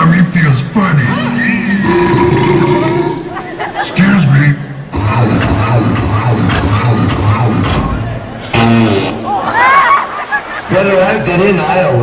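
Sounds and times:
amplified voice from speaker: 2.7 - 9.5, 10.7 - 12.0.

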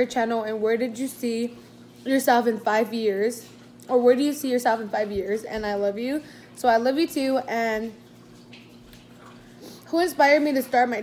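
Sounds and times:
woman speaking: 0.0 - 8.0, 9.9 - 11.0.

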